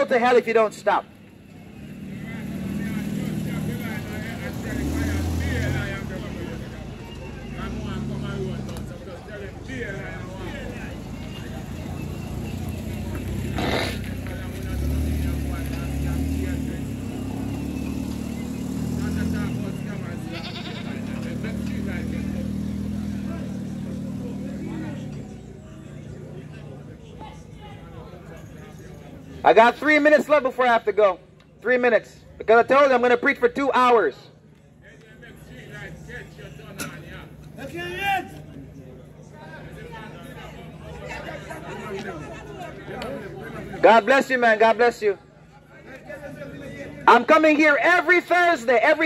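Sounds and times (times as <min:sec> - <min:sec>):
vehicle engines passing: 0:00.0 - 0:49.0
car driving slowly past: 0:00.9 - 0:30.1.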